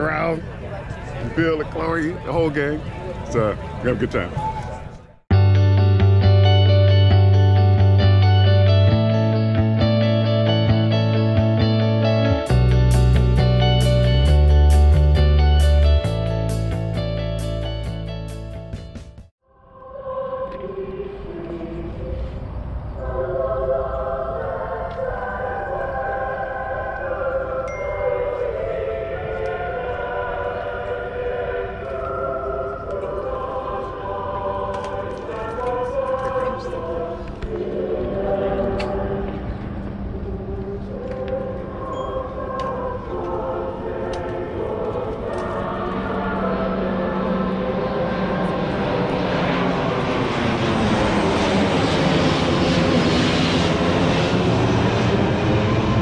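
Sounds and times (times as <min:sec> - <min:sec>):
aircraft formation flying over: 0:28.6 - 0:56.0.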